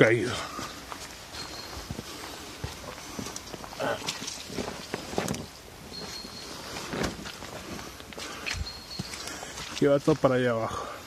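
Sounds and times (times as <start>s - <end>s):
footsteps on dirt path: 0.2s - 10.3s.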